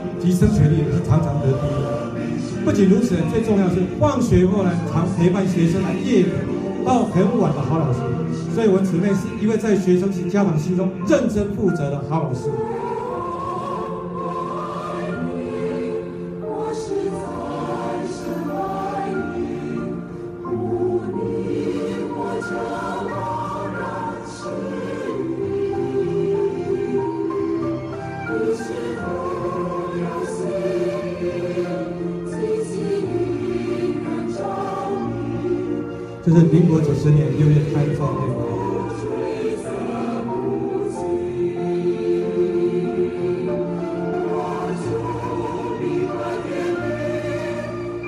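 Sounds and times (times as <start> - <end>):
choir singing held chords: 0.0 - 11.1, 12.1 - 48.0.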